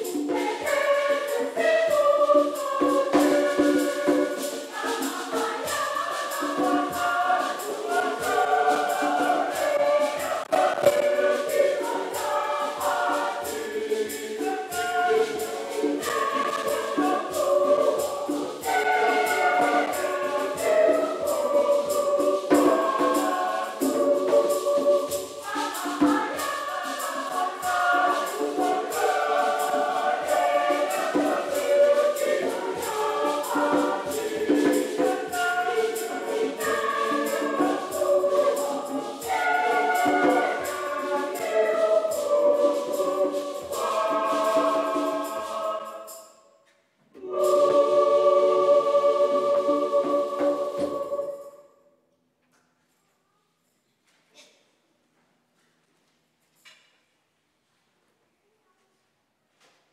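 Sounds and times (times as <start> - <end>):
choir singing a hymn: 0.0 - 46.4, 47.2 - 51.8
jingling hand percussion: 0.0 - 46.5, 47.2 - 51.7.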